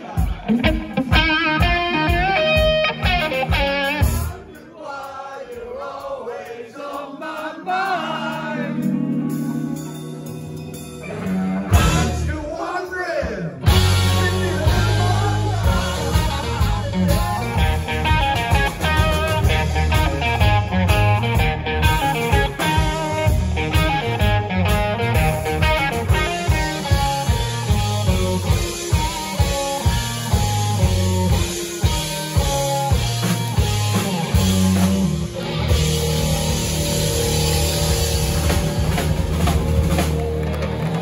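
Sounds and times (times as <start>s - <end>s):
live rock band playing: 0.0s - 4.5s, 7.9s - 12.4s, 13.5s - 41.0s
lead guitar runs: 0.5s - 4.2s, 13.7s - 41.0s.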